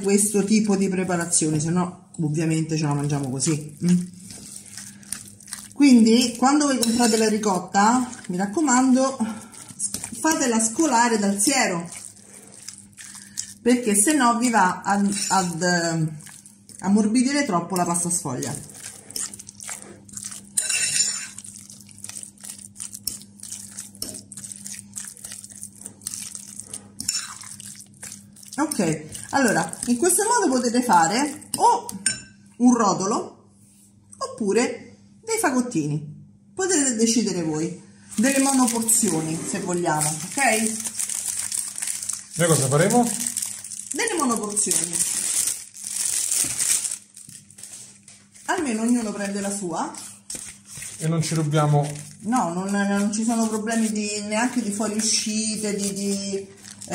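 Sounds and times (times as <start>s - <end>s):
plastic packaging crinkling: 3.0s - 17.0s, 17.9s - 31.5s, 38.1s - 56.9s
fork scraping a bowl: 3.4s - 13.6s, 14.9s - 15.6s, 17.8s - 32.3s.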